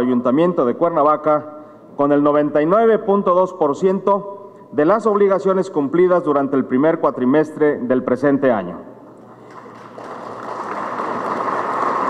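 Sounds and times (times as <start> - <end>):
audience applause: 9.4 - 12.0.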